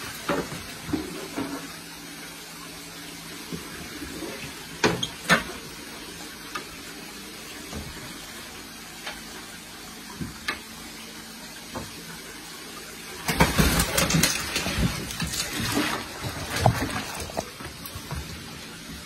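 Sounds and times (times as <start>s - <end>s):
water sloshing and splashing: 13.2s - 19.0s
fish splashing in net: 13.3s - 17.8s.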